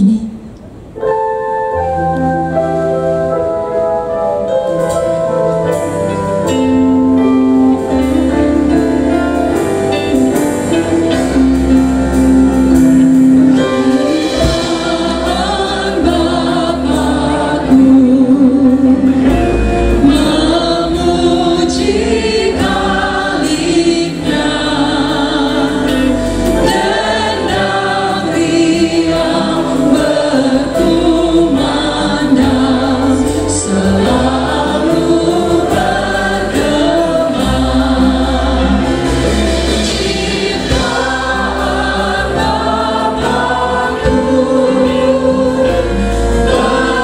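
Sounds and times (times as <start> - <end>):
keyboard: 0.0 - 47.0
sustained bass notes: 0.0 - 47.0
guitars: 4.8 - 47.0
man and woman singing a hymn: 7.8 - 47.0.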